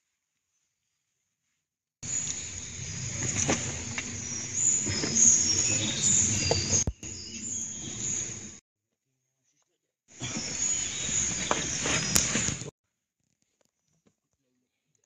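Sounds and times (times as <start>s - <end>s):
high chirping: 2.0s - 8.6s, 10.2s - 12.7s.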